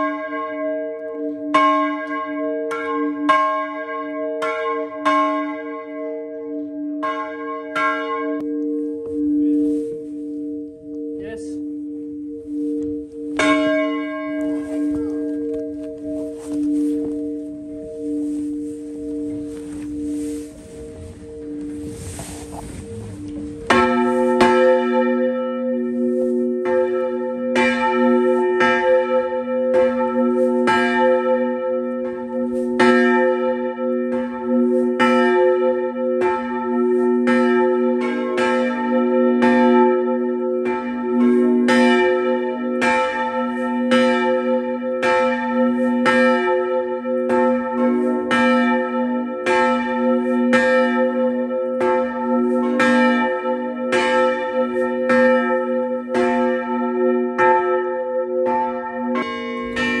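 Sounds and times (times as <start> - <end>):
church bells ringing: 0.0 - 60.0.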